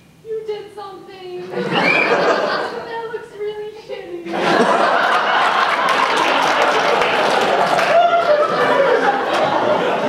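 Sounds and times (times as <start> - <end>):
audience laughing loudly: 1.5 - 2.9, 4.2 - 10.0.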